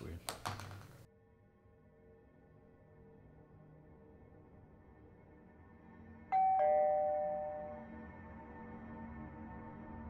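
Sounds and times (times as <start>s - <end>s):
two-note doorbell chime: 6.3s - 8.1s.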